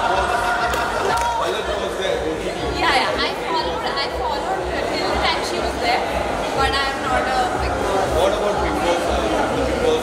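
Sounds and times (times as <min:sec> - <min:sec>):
crowd chatter indoors: 0:00.0 - 0:10.0.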